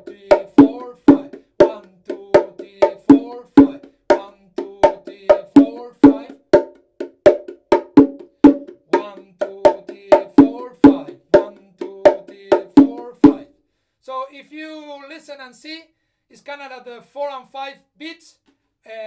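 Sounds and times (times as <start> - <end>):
bongos played by hand: 0.0 - 13.5.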